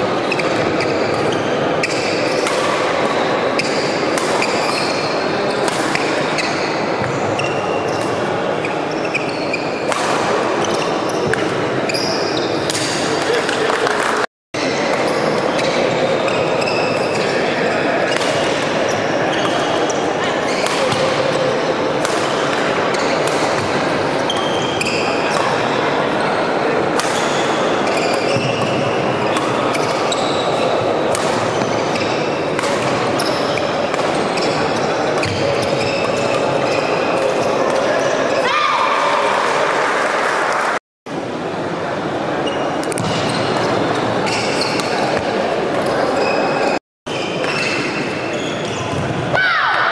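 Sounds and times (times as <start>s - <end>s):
crowd chatter: 0.0s - 49.9s
voices in echoing hall: 0.0s - 49.9s
shoes squeaking on court floor: 0.2s - 38.4s, 42.4s - 49.2s
racket hitting shuttlecock: 0.6s - 4.8s, 5.6s - 6.4s, 9.9s - 11.6s, 12.6s - 14.2s, 20.6s - 21.3s, 22.0s - 24.6s, 26.9s - 34.4s.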